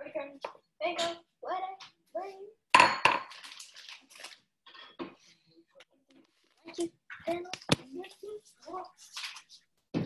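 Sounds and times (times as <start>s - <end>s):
metal kitchenware clang: 2.8s - 3.3s.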